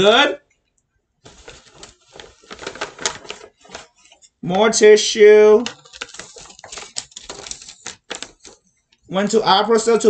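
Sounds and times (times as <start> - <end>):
tissue paper crinkling: 1.3 - 4.2, 5.6 - 8.7.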